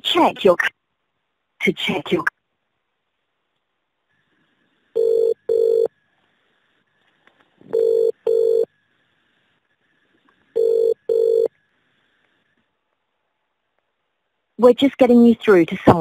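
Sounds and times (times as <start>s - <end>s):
telephone double ringing tone: 5.0s - 5.9s, 7.7s - 8.7s, 10.6s - 11.5s.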